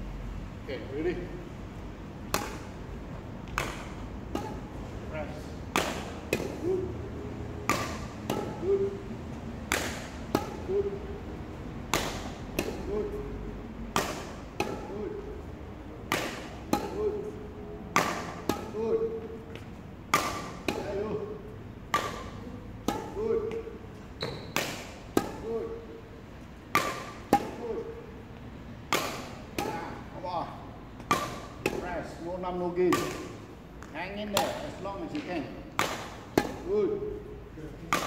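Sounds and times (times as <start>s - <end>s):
shoes squeaking: 22.0s - 25.9s.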